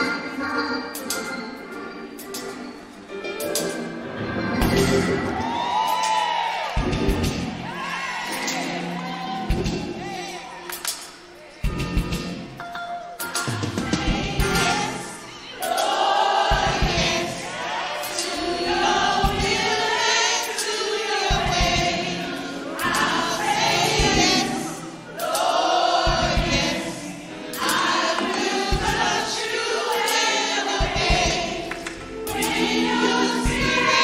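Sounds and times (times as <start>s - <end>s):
instrumental accompaniment: 0.0s - 34.0s
group singing a gospel song: 4.1s - 11.0s, 13.3s - 34.0s.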